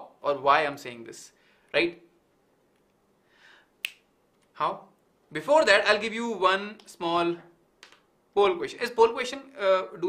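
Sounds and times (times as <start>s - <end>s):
finger snap: 3.8s - 4.1s.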